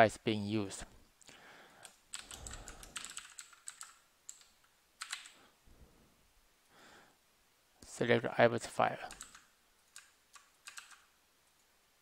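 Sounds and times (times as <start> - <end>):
computer keyboard typing: 1.8 - 5.4, 9.1 - 11.7.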